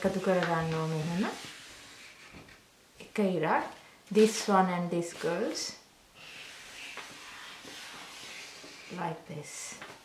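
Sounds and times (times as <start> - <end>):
marker pen scratching on paper: 6.2 - 9.1.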